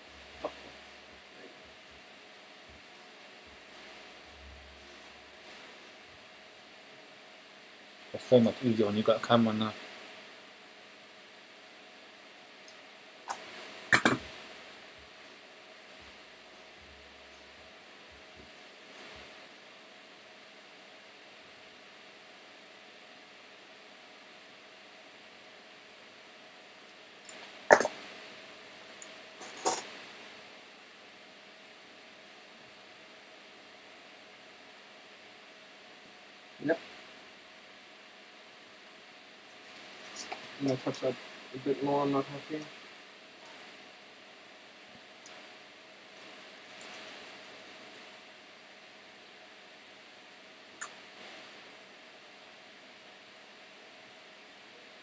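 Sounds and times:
faint hum: 0.0s - 55.0s
faint steady hiss: 0.0s - 55.0s.

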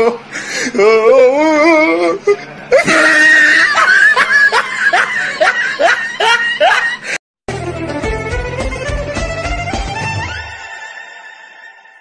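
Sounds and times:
snickering laughter: 2.7s - 7.2s.

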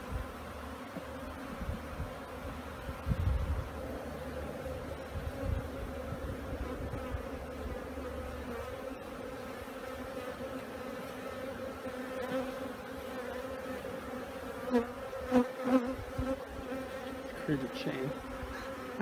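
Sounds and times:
honeybees humming: 0.0s - 19.0s
loud bee buzzes: 0.0s - 19.0s.

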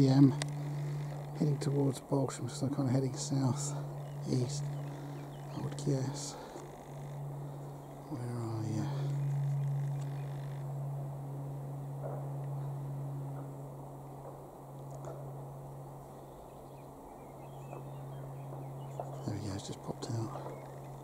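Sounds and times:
distant light aircraft drone: 0.0s - 21.0s.

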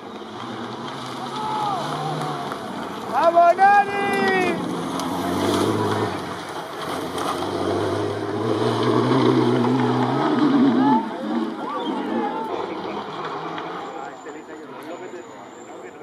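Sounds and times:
rally car engine approaching: 0.0s - 16.0s
spectators chatting: 0.0s - 16.0s
loud shouted call: 1.3s - 2.5s, 3.1s - 4.6s.

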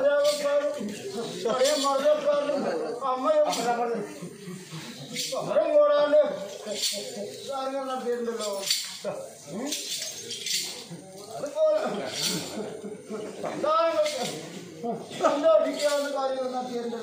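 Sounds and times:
people talking: 0.0s - 17.0s.

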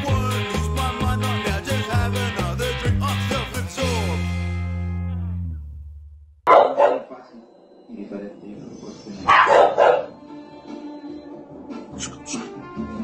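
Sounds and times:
upbeat music closing chord: 0.0s - 5.4s
dog barking loudly: 6.5s - 7.2s, 9.3s - 10.2s.

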